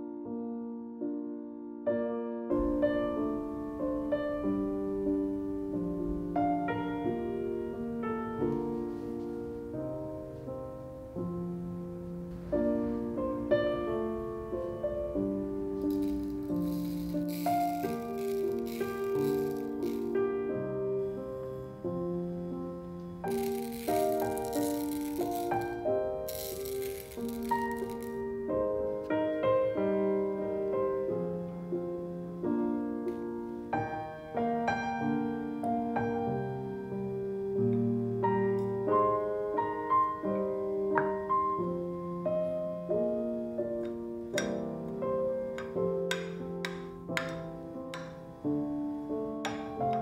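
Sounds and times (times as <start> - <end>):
soft piano music: 0.0 - 50.0
seeds pouring into glass dish: 15.8 - 20.2, 23.2 - 28.3.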